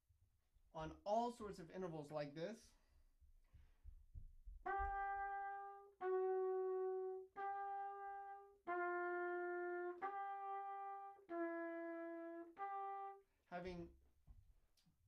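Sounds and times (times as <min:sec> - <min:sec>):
trumpet playing long notes: 0:04.6 - 0:13.8.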